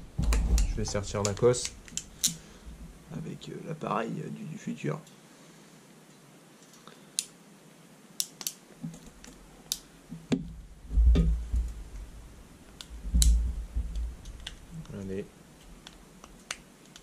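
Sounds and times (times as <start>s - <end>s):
heavy low thuds: 0.0s - 1.5s, 10.3s - 14.2s.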